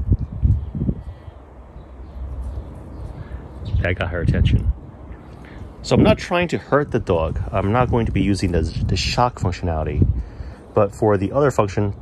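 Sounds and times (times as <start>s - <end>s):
low steady outdoor rumble: 0.0s - 12.0s.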